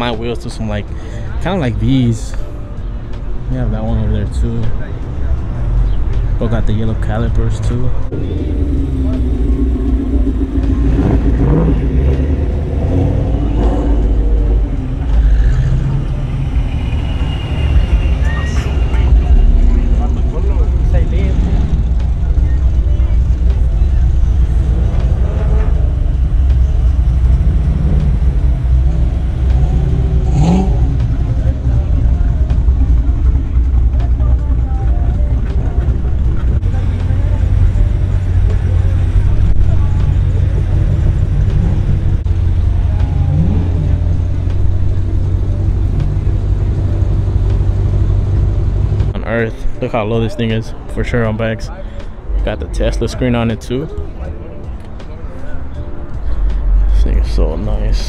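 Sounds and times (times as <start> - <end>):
car engines rumbling: 0.0 - 58.0
crowd voices: 0.0 - 58.0.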